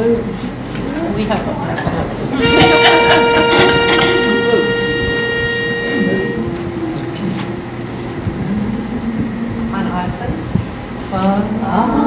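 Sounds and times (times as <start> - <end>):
voices humming held notes: 2.2 - 12.0
pitch pipe reedy note: 2.4 - 6.9.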